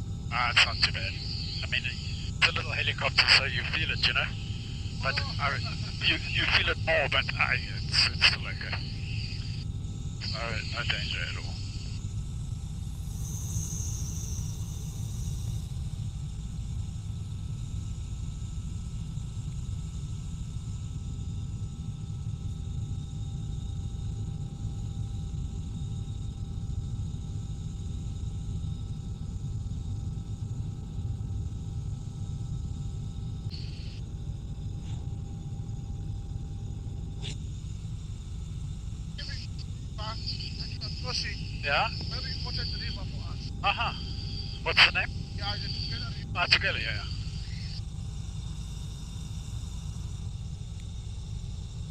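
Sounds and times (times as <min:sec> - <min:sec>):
faint whining tones: 0:00.0 - 0:20.2, 0:24.7 - 0:51.9
helicopter engine and rotor rumble: 0:00.0 - 0:20.4, 0:21.0 - 0:51.9.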